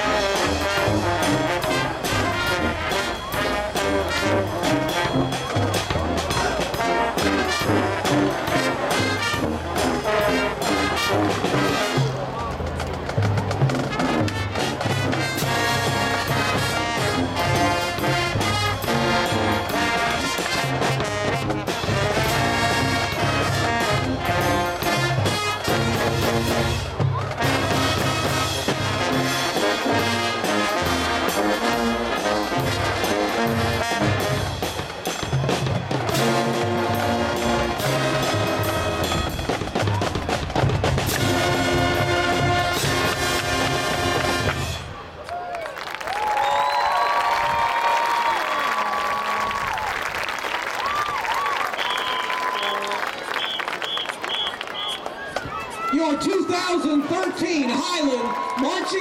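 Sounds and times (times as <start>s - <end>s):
marching band playing: 0.0s - 45.2s, 46.1s - 59.0s
crowd cheering and applauding: 45.2s - 59.0s
crowd whooping: 45.2s - 59.0s.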